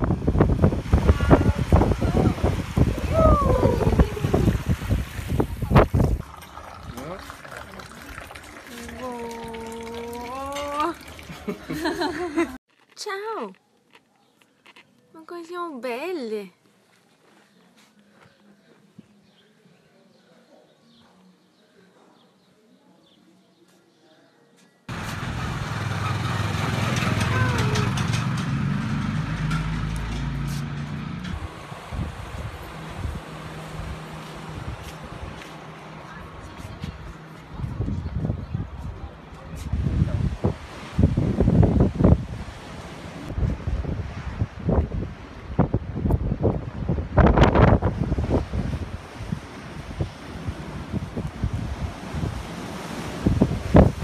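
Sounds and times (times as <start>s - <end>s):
wind buffeting microphone: 0.0s - 7.2s, 25.8s - 54.0s
surf washing over sand: 0.0s - 12.5s, 39.1s - 54.0s
street noise: 0.0s - 54.0s
vehicle engine humming: 24.9s - 39.6s.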